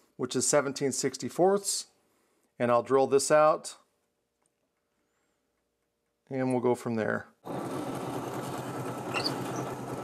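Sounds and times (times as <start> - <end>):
drill bit cutting wood: 7.5 - 10.0
drill press motor hum: 7.5 - 10.0.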